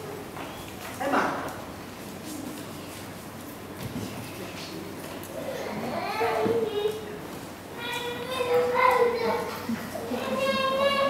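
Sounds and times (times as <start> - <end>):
children talking and calling out: 5.3 - 11.0.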